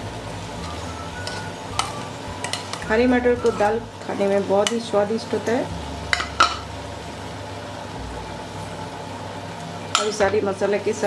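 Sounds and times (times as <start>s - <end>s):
food sizzling in pan: 0.0s - 11.0s.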